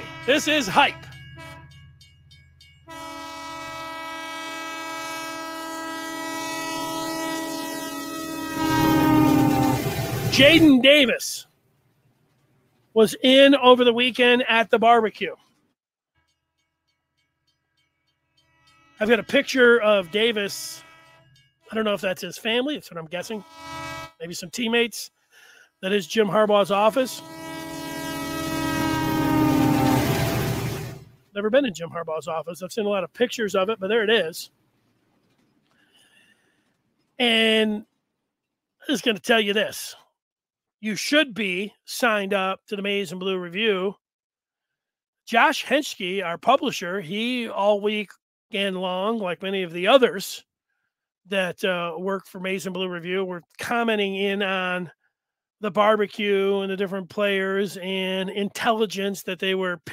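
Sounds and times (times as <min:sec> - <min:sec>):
train horn blast: 0:00.0 - 0:01.8, 0:02.9 - 0:10.7, 0:18.4 - 0:21.4, 0:23.2 - 0:24.2, 0:26.9 - 0:31.1
low rumble of train: 0:00.0 - 0:10.7, 0:11.8 - 0:13.0, 0:17.2 - 0:21.7, 0:27.1 - 0:31.4
train rumble: 0:08.5 - 0:11.0, 0:27.8 - 0:31.4.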